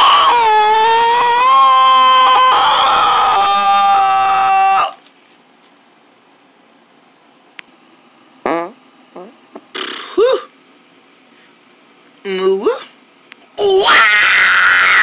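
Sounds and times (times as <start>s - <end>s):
person wailing: 0.0s - 5.0s, 13.6s - 15.0s
short vocal noises with bending pitch: 8.4s - 10.6s.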